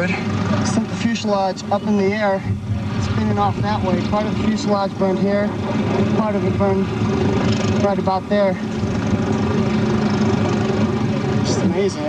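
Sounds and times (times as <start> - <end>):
motor engine humming: 0.0 - 12.0.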